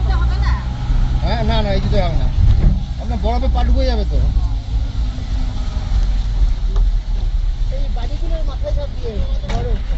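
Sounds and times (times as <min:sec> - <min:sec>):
car engine rumble: 0:00.0 - 0:09.9
road noise: 0:00.0 - 0:09.9.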